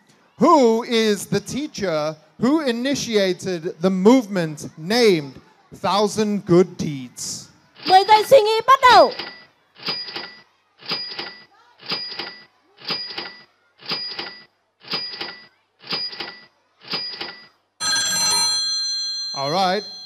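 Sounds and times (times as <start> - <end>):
short tick-like beeps: 9.1 - 17.5
ringing many-toned chime: 17.8 - 20.0.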